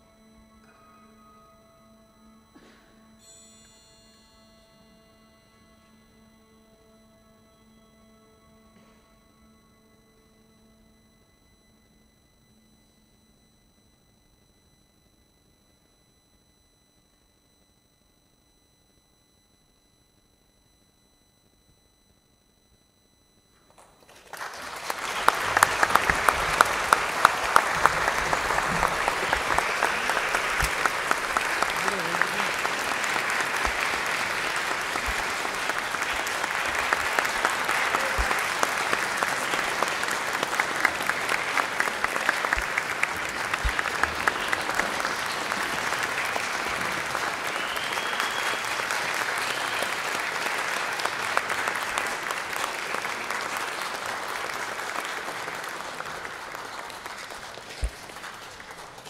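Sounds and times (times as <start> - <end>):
audience applauding: 23.8 - 59.0.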